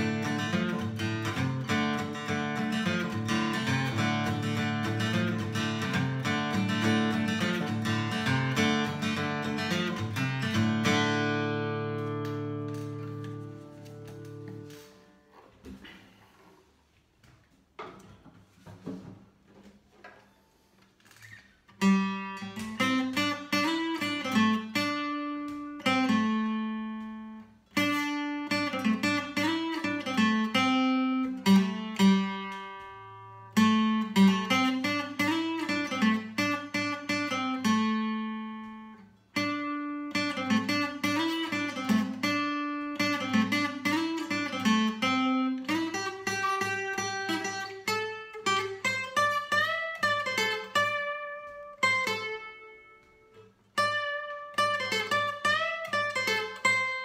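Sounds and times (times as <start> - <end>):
fingerpicked acoustic guitar: 0.0 - 57.0.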